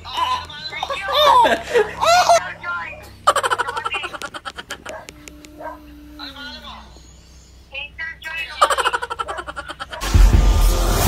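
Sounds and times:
rapid pulsing laughter: 0:00.9 - 0:02.4, 0:03.2 - 0:05.2, 0:08.6 - 0:10.3.

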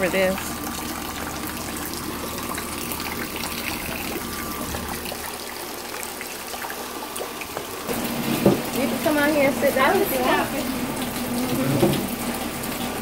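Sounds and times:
rain falling: 0:00.0 - 0:13.0
water pouring into barrel: 0:00.0 - 0:13.0.

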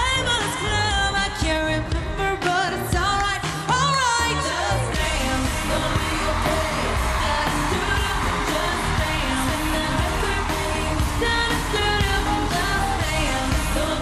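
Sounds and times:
electronic dance-pop track: 0:00.0 - 0:14.0
woman singing into microphone: 0:00.0 - 0:14.0.

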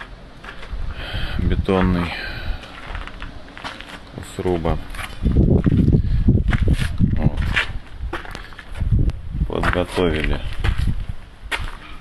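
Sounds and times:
footsteps on concrete: 0:00.0 - 0:00.8, 0:01.6 - 0:08.9, 0:09.5 - 0:12.0
man speaking indistinctly: 0:01.2 - 0:02.6, 0:04.1 - 0:05.0, 0:07.1 - 0:07.7, 0:09.4 - 0:10.6
low rumble: 0:04.7 - 0:09.6.

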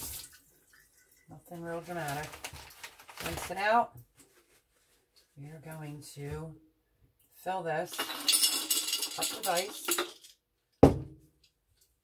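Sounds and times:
sharp knock on hard surface: 0:10.8 - 0:11.2.

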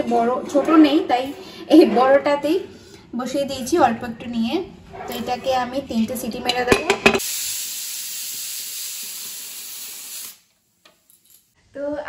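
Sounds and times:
pressure cooker steam hiss: 0:07.2 - 0:10.5.

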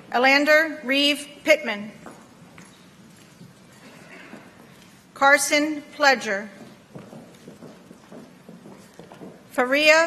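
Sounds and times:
footsteps on stage floor: 0:01.8 - 0:10.0.

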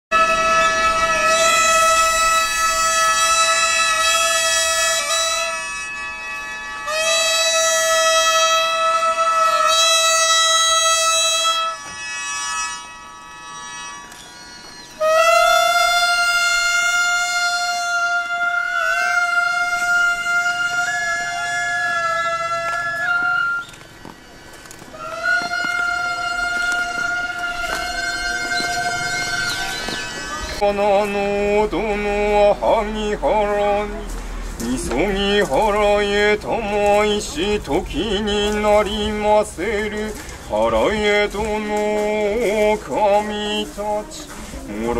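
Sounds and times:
bamboo flute melody: 0:00.1 - 0:44.9.

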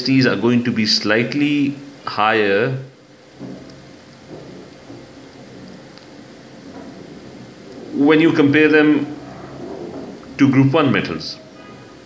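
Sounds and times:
background hiss with low rumble: 0:00.0 - 0:12.0
faint soft murmurs: 0:02.8 - 0:12.0.

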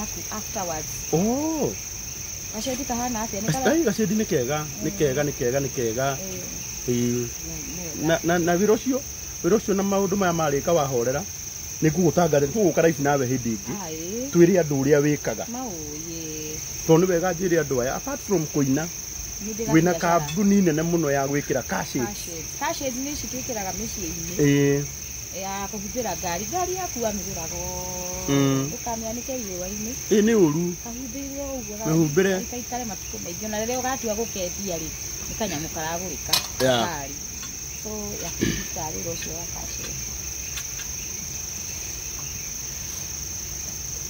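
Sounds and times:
people talking: 0:00.0 - 0:01.8, 0:02.6 - 0:11.2, 0:11.8 - 0:37.2, 0:37.8 - 0:40.0
crickets chirping: 0:00.0 - 0:44.0.

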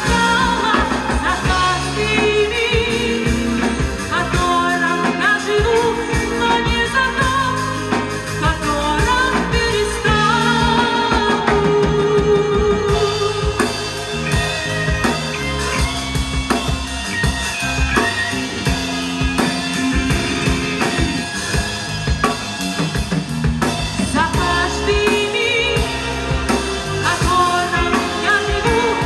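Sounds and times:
big band playing pop arrangement: 0:00.0 - 0:29.0
snare and bass drum beating: 0:12.9 - 0:29.0.

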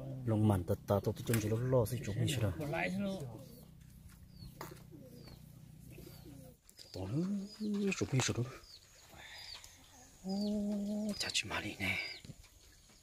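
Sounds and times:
small bird chirping: 0:00.8 - 0:13.0
man giving low calls: 0:06.2 - 0:08.7.

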